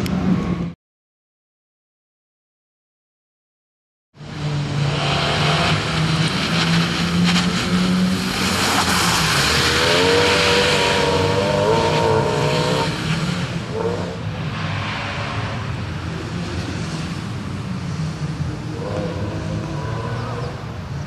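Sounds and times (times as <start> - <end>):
car engine running hard: 4.2 - 21.0.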